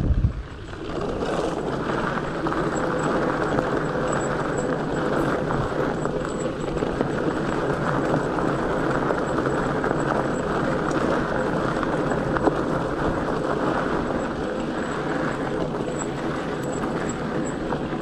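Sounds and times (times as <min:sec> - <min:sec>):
bike tires rolling on dirt: 0:00.0 - 0:18.0.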